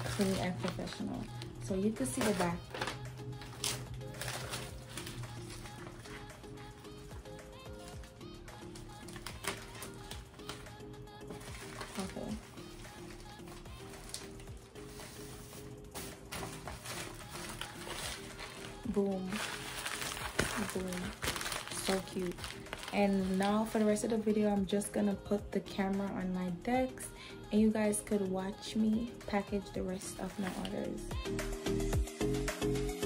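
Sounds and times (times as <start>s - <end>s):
paper rustling: 0.0s - 24.0s, 30.2s - 30.9s
soft background music: 0.0s - 33.0s.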